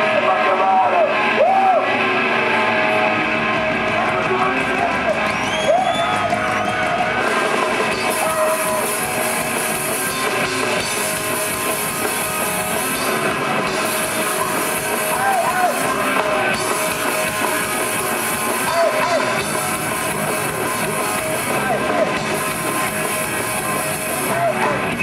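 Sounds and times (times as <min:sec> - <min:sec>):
distorted electric guitars: 0:00.0 - 0:25.0
drum kit: 0:00.0 - 0:25.0.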